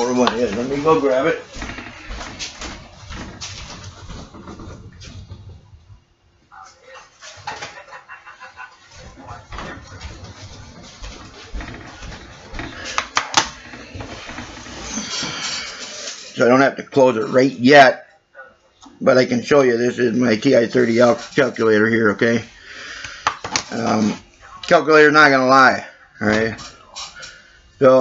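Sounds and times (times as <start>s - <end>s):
footsteps across a room: 0.0s - 6.4s, 7.0s - 16.3s.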